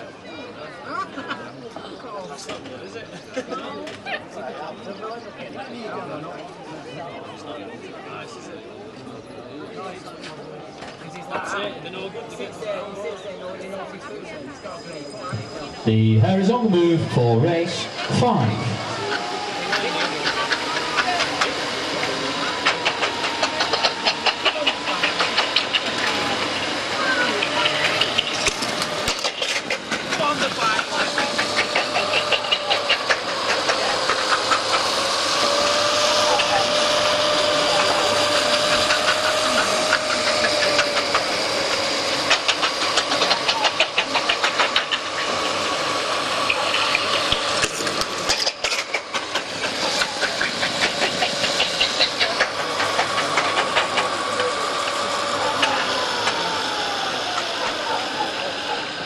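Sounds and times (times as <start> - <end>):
spectators shouting: 16.3 - 48.3.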